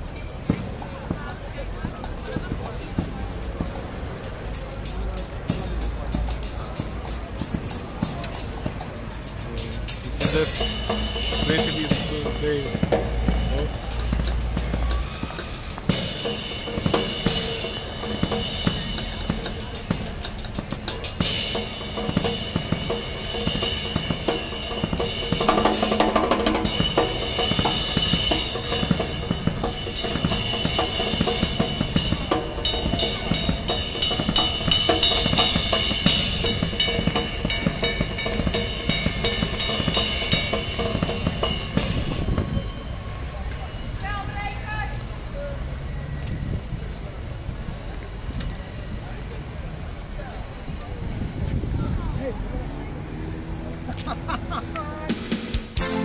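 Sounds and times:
street crowd voices: 0.0 - 56.0
music with drum-kit beat: 0.4 - 42.8, 54.9 - 56.0.

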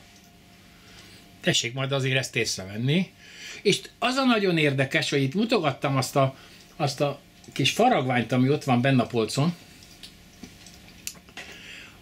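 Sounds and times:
person speaking: 1.4 - 9.7
soft breath: 3.2 - 3.6, 11.4 - 12.0.

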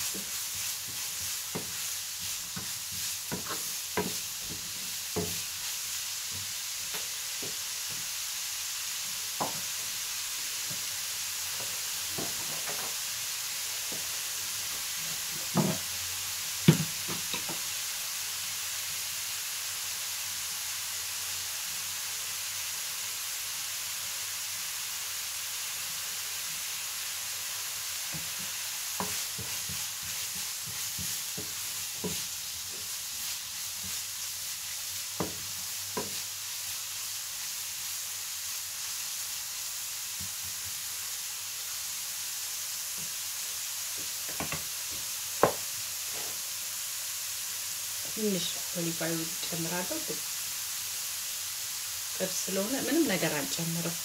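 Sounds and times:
beetroot sizzling in a frying pan: 0.0 - 54.0
wooden spoon knocking a pan: 0.1 - 1.8, 2.5 - 5.5, 9.4 - 9.7, 11.6 - 13.0, 15.3 - 15.9, 16.6 - 17.6, 35.2 - 36.2, 44.0 - 45.7.

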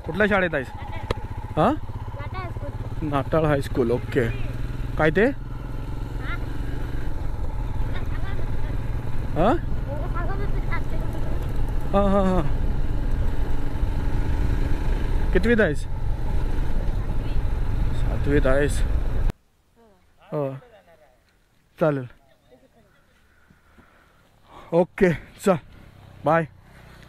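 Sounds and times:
motorcycle engine running: 0.0 - 19.3, 25.2 - 27.0.

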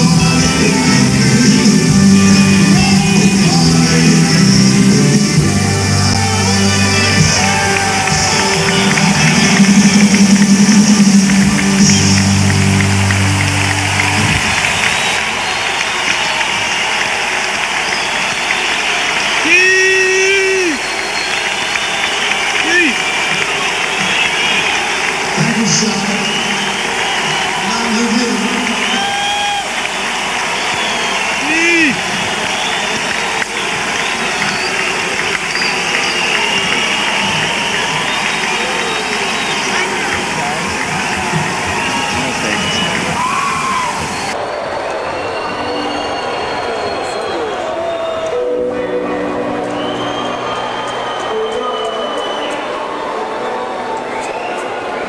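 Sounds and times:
crowd cheering: 0.0 - 55.0
people yelling and whooping: 5.7 - 11.4, 13.6 - 55.0.

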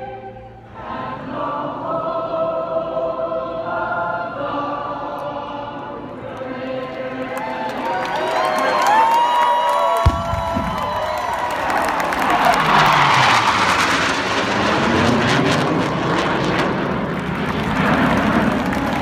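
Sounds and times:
choir singing: 0.0 - 8.0
crowd cheering: 6.9 - 14.3, 17.0 - 19.0
jets rumbling overhead: 10.0 - 19.0.

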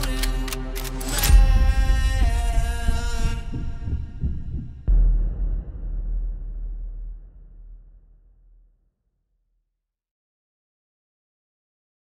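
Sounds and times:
low bass pulses: 1.2 - 8.4
deep hit: 1.3 - 9.0.

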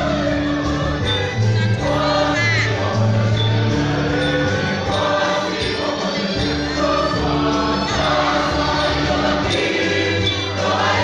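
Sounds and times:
choir singing gospel: 0.0 - 11.0
instrumental accompaniment: 0.0 - 11.0.

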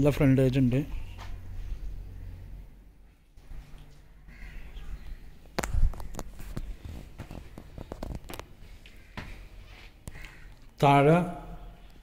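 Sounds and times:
crow cawing: 4.2 - 5.3, 8.8 - 10.7.

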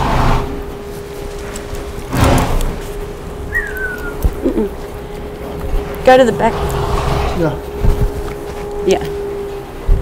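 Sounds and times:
horse blowing through nostrils: 6.6 - 7.4.

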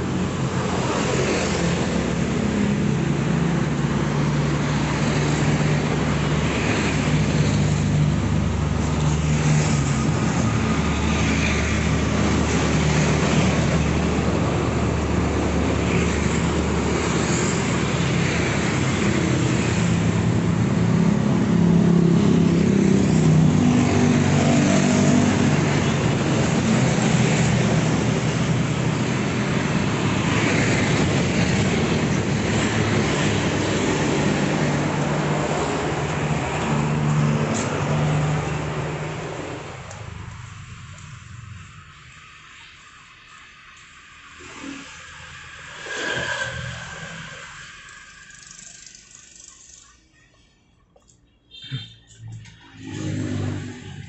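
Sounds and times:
motorcycles and cars passing: 0.0 - 54.0.

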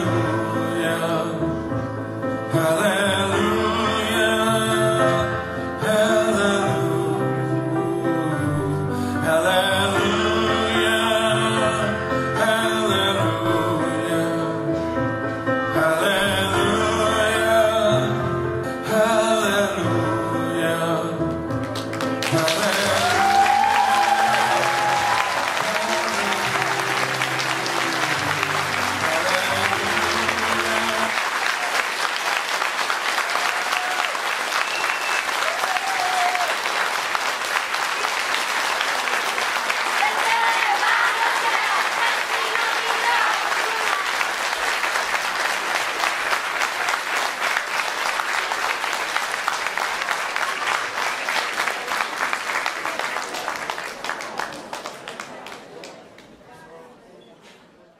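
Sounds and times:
closing music: 18.8 - 33.2
audience applauding: 21.5 - 56.4.

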